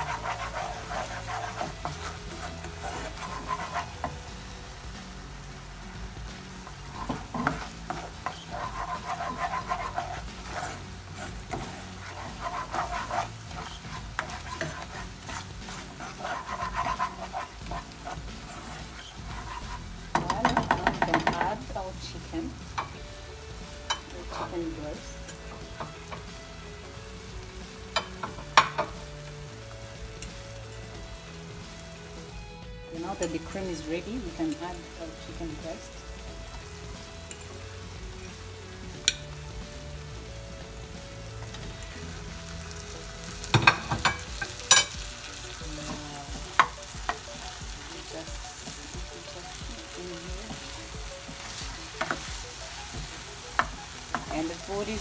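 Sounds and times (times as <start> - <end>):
spatula scraping a frying pan: 0.0 - 4.6, 6.2 - 21.8, 33.0 - 55.0
sauce simmering and sizzling: 0.0 - 55.0.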